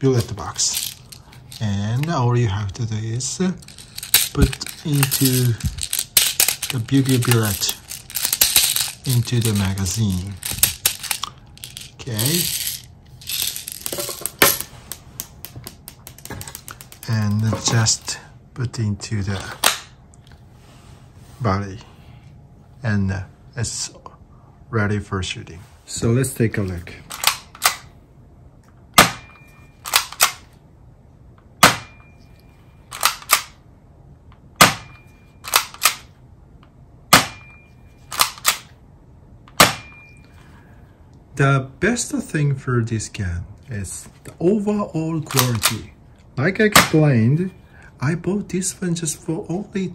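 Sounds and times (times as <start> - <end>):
plastic pellets clicking and rattling: 0.6 - 1.7, 3.6 - 14.4.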